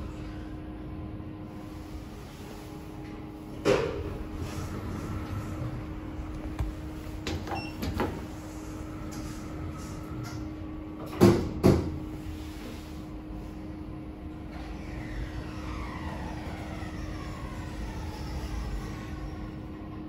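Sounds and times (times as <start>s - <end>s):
lift hum: 0.0s - 11.2s
lift doors shutting with thuds: 3.5s - 12.1s.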